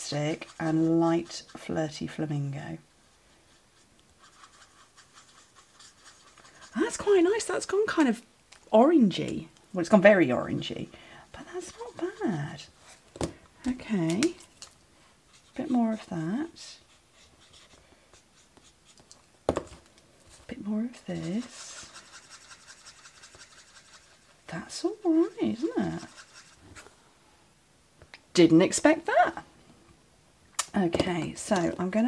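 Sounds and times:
marker nib scratching on cardstock: 0.0s - 1.7s, 3.5s - 7.5s, 11.5s - 12.7s, 15.3s - 19.2s, 20.9s - 26.9s.

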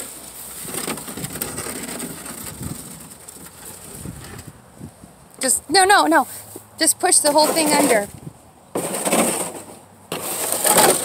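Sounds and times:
plastic tub scraping along ground: 0.0s - 4.5s, 5.7s - 11.0s.

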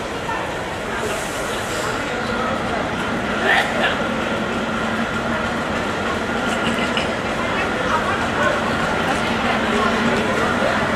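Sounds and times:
diesel train rumbling: 0.0s - 10.9s.

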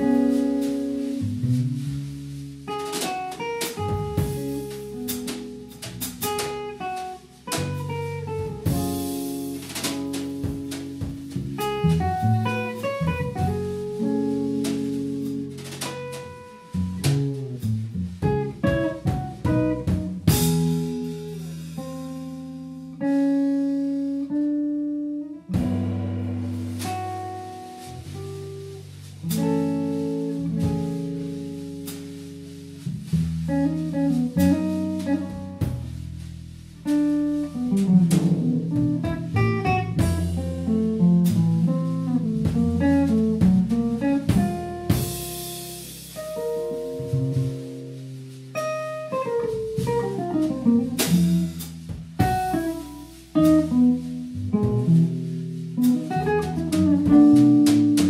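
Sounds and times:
drum kit: 0.0s - 58.0s
upright double bass: 0.0s - 58.0s.

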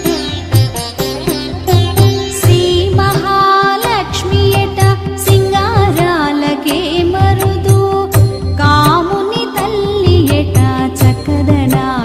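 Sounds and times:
steady drum beat: 0.0s - 12.0s
woman singing devotional song: 1.8s - 12.0s.

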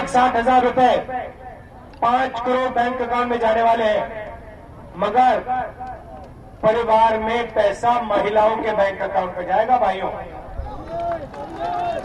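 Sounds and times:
man speaking through loudspeakers: 0.0s - 12.0s.

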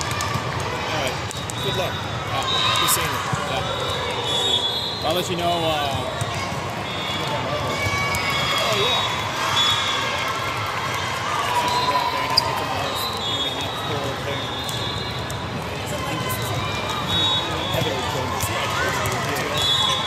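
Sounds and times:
volleyballs struck and bouncing: 0.0s - 2.2s, 5.3s - 9.4s, 14.0s - 20.0s
many voices talking and calling: 0.0s - 20.0s.

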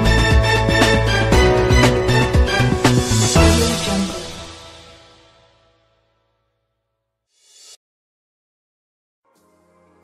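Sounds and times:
news theme music: 0.0s - 5.7s.

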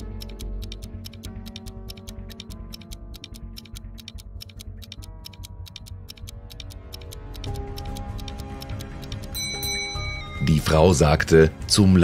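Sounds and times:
clock-like ticking: 0.0s - 10.8s
held music chords: 0.0s - 11.2s
high bell-like tones: 9.3s - 11.0s.

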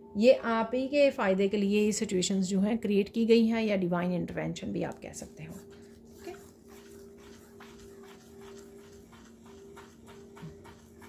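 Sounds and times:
steady low hum: 3.8s - 11.0s
brushing through sand on a plate: 5.3s - 11.0s.

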